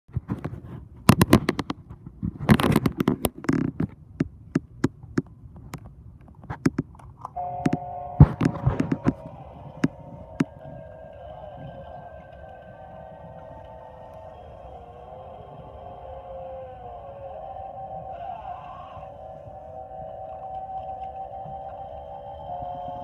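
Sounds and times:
sharp clicks and knocks: 0:00.2 - 0:10.6
eerie droning tone: 0:07.4 - 0:23.0
higher tone: 0:07.4 - 0:23.0.

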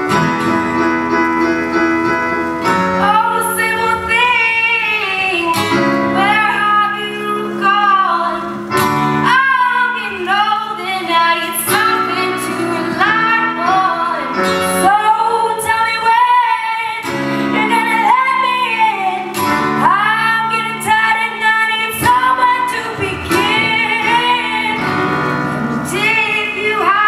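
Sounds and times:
acoustic guitar: 0:00.0 - 0:27.0
girl singing: 0:03.0 - 0:27.0.

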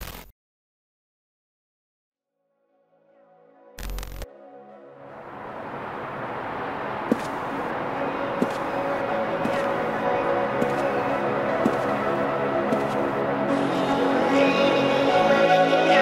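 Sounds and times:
background music: 0:03.0 - 0:06.0, 0:07.1 - 0:16.0.

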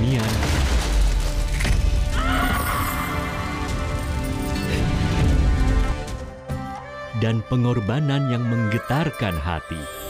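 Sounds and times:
dramatic background music: 0:00.0 - 0:10.0.

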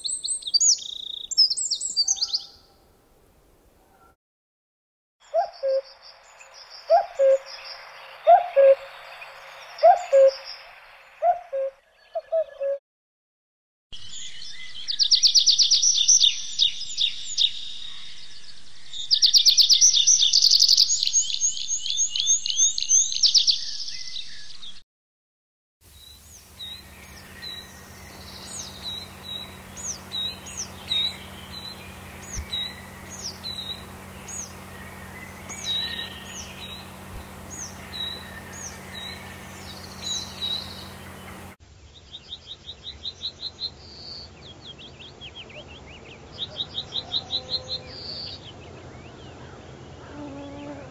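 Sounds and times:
bird singing trilled phrases: 0:00.0 - 0:02.6, 0:26.0 - 0:41.6
cuckoo calling: 0:05.3 - 0:06.0, 0:06.9 - 0:07.6, 0:08.2 - 0:09.0, 0:09.8 - 0:12.8, 0:26.4 - 0:41.6
low steady hum: 0:26.2 - 0:41.6.

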